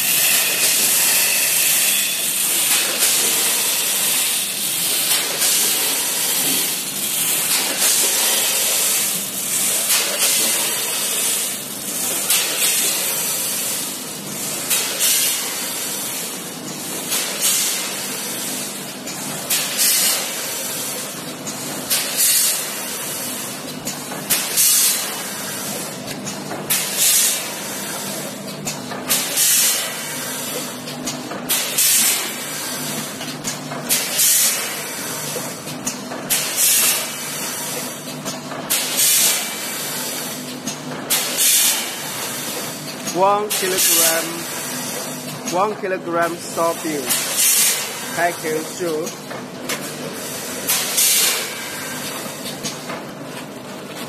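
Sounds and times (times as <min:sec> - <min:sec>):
packing machine hum: 0:00.0 - 0:54.0
pneumatic hissing bursts: 0:38.7 - 0:40.2, 0:47.1 - 0:48.1, 0:50.1 - 0:52.0.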